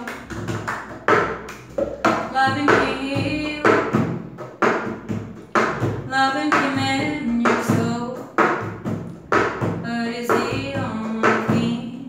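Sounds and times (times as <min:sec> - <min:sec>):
woman singing pop song: 0:00.0 - 0:00.3, 0:02.1 - 0:04.1, 0:06.0 - 0:08.5, 0:09.8 - 0:12.0
hands clapping: 0:00.0 - 0:02.9.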